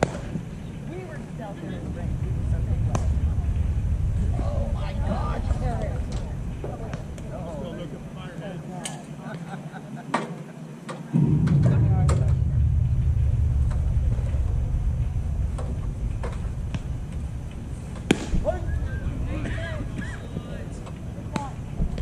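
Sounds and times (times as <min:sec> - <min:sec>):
wind buffeting microphone: 0:00.0 - 0:08.8, 0:11.2 - 0:22.0
distant voices: 0:00.0 - 0:22.0
sharp knocks: 0:11.2 - 0:18.4.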